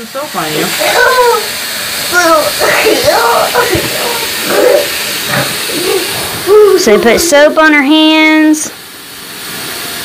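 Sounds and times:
faucet running into sink: 0.0s - 10.0s.

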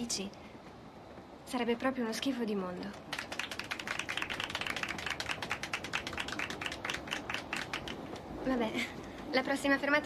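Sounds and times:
people applauding: 3.1s - 8.4s.

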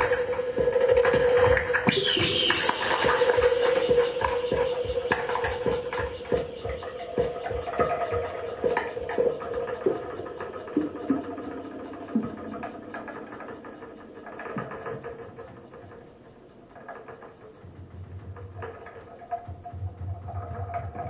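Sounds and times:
held electronic tones: 0.0s - 12.5s
low pulsing drone: 0.0s - 16.0s
scattered electronic clicks and knocks: 0.0s - 21.0s.

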